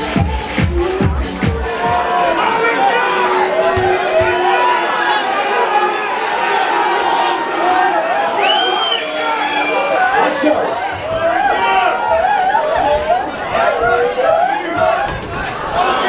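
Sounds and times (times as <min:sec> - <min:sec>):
crowd chatting: 0:00.0 - 0:16.0.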